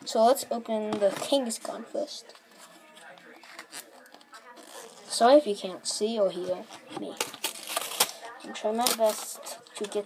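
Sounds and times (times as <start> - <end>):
foil wrapper tearing: 7.2 - 9.4.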